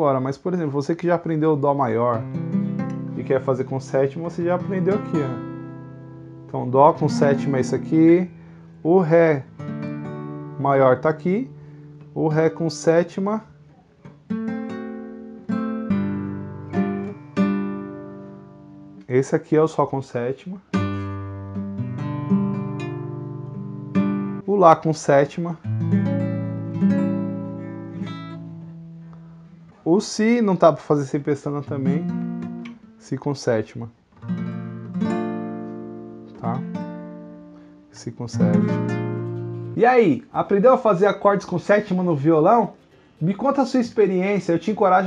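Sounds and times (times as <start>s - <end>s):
classical guitar strums: 2.1s - 19.1s, 20.7s - 24.5s, 25.6s - 29.9s, 31.4s - 33.0s, 34.1s - 37.7s, 38.3s - 44.9s.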